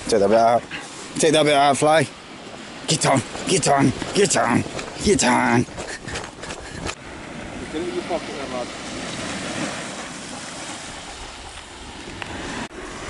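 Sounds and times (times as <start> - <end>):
small waves breaking on shore: 0.0 - 13.0
wind on microphone: 3.2 - 13.0.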